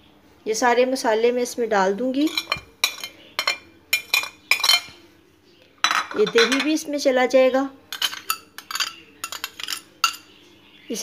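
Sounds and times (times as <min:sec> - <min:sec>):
metal spoon clinking against glass: 0:02.3 - 0:05.0, 0:05.8 - 0:06.8, 0:07.9 - 0:10.3.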